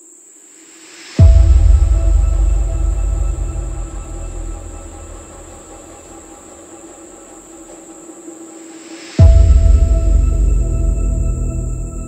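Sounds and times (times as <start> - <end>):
high whine: 0.7 - 12.0
sustained drone: 1.0 - 12.0
deep rumbling boom: 1.2 - 7.4, 9.2 - 12.0.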